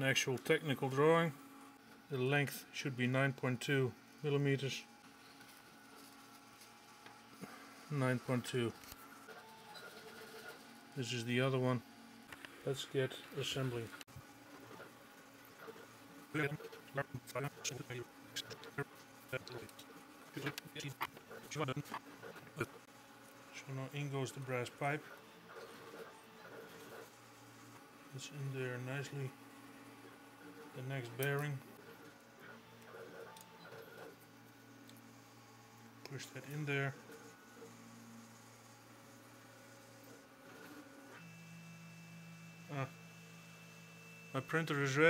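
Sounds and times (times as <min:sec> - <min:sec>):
faint electrical hum: 0:00.0 - 0:45.0
camera autofocus motor buzzing: 0:29.8 - 0:35.7.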